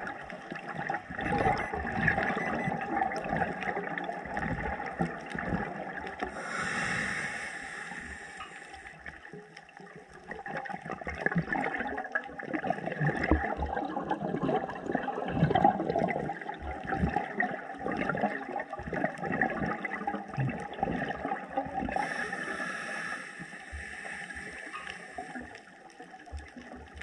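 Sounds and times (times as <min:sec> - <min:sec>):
underwater bubbles gurgling: 0:00.0 - 0:27.0.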